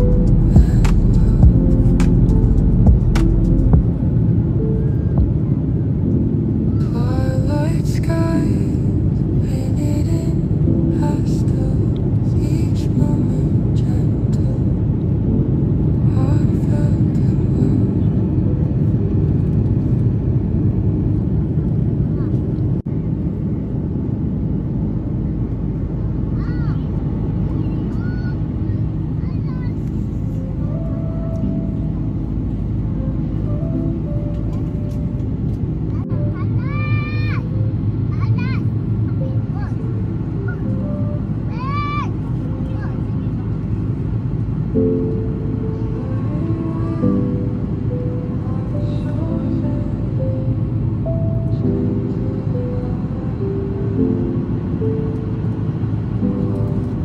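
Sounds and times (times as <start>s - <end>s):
airliner cabin rumble: 0.0s - 57.0s.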